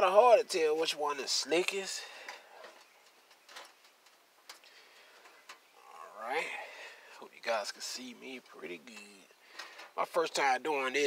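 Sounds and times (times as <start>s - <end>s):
faint sharp clicks: 8.4s - 9.9s.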